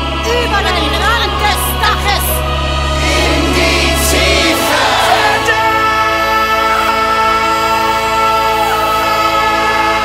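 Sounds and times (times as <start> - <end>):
choir and orchestra chord: 0.0 - 10.0.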